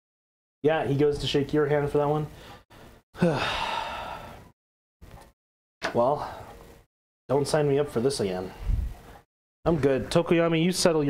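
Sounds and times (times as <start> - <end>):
man sighing: 3.2 - 4.4.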